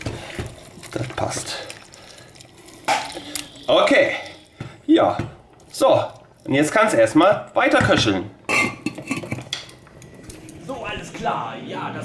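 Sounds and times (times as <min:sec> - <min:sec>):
metal lid clinking on pot: 0:08.5 - 0:09.8.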